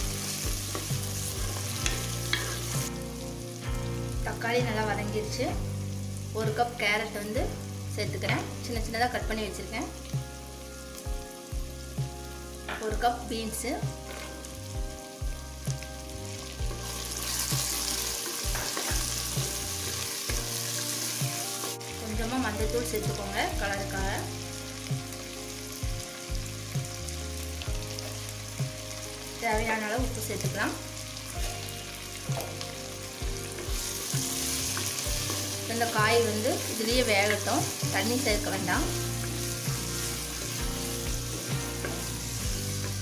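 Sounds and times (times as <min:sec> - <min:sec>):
vegetables sizzling in oil: 0:00.0 - 0:43.0.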